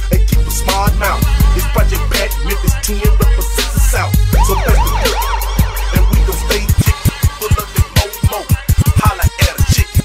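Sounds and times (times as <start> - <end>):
hip hop beat bass thumps: 0.0 - 10.0
siren sound effect wailing: 4.3 - 7.3.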